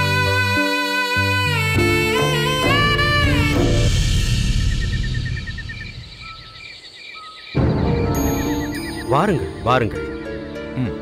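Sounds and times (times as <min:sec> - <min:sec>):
wind instrument sliding melody: 0:00.0 - 0:04.9
low rumbling drone: 0:01.8 - 0:06.6.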